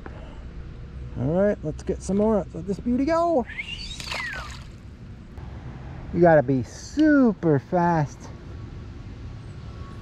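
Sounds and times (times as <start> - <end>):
fish splashing into water: 3.9 - 4.8.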